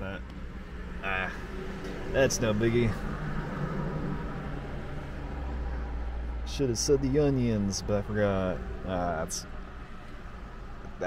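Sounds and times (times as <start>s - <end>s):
car cabin rumble and hiss: 0.0s - 11.0s.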